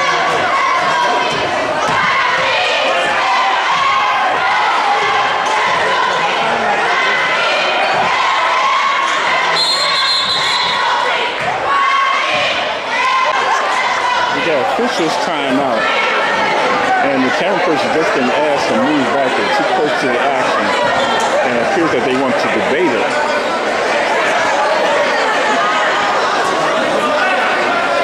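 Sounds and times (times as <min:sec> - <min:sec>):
players and crowd shouting: 0:00.0 - 0:28.0
referee's whistle: 0:09.6 - 0:10.9.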